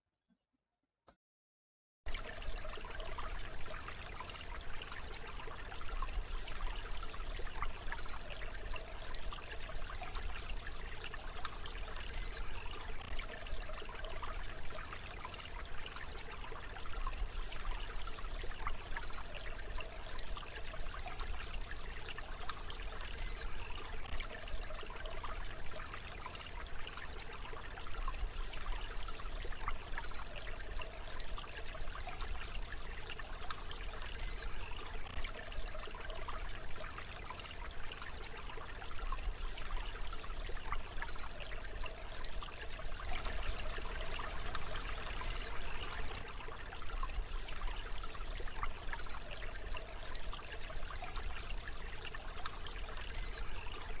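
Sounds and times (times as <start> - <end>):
stream water trickling: 2.1 - 54.0.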